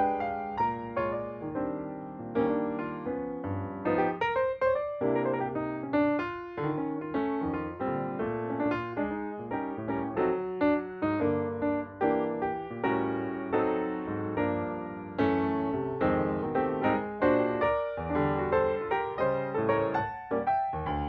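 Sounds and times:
piano music: 0.0 - 21.0.

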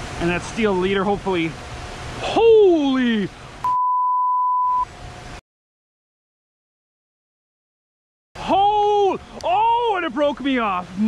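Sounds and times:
rushing river water: 0.0 - 3.6, 8.4 - 11.0
censor bleep: 3.6 - 4.9.

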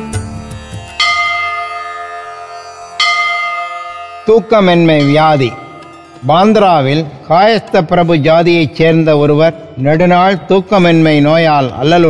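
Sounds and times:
bell ringing: 0.8 - 11.6.

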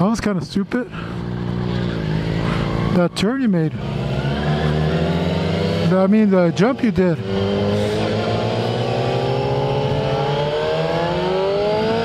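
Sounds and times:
motorcycle engine running: 0.9 - 12.0.

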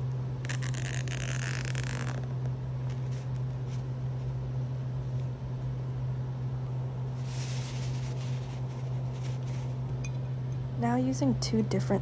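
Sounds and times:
steady low hum: 0.0 - 12.0
zip tie ratcheting: 0.5 - 2.3.

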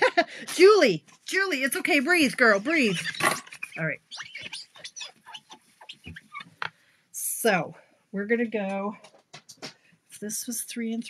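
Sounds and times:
tissue squeaking on glass: 1.3 - 6.8.

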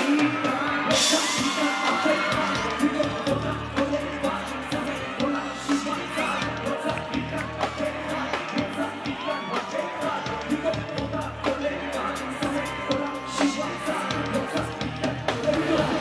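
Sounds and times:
live hip-hop band music: 0.0 - 16.0.

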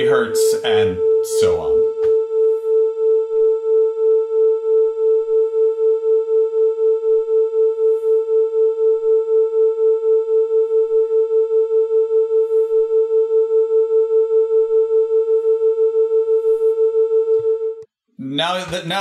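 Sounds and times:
beating pure tones: 0.0 - 2.3.

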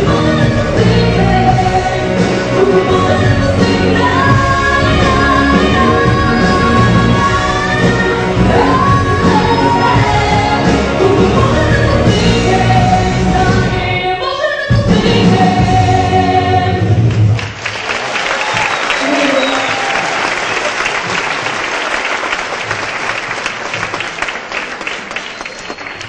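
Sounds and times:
woman singing: 0.0 - 16.9
musical accompaniment: 0.0 - 17.7
audience applauding: 17.1 - 26.0.

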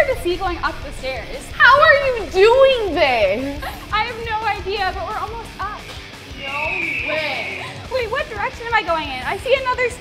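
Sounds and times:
women talking: 0.0 - 5.8, 6.4 - 10.0
background music: 0.0 - 10.0
high held tone: 6.3 - 8.0.

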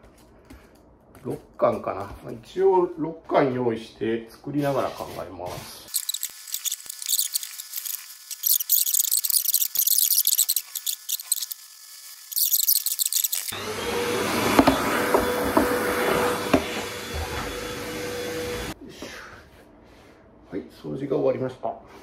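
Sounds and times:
styrofoam rubbing squeak: 5.9 - 11.6, 12.2 - 13.6.

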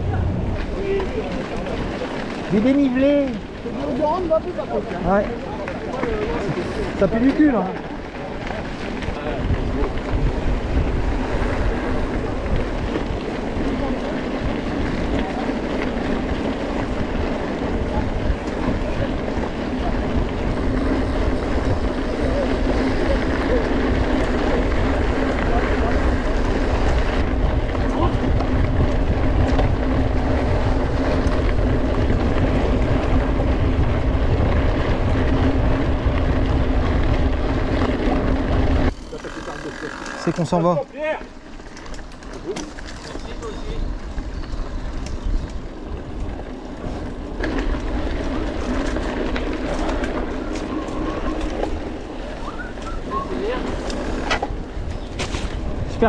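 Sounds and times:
steady low hum: 0.0 - 0.8
wind rushing over microphone: 0.0 - 39.1, 40.8 - 56.0
bike tyre rumble: 0.0 - 56.0.

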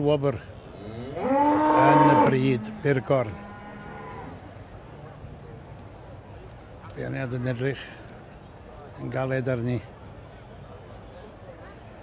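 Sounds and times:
cattle mooing: 0.7 - 4.4.

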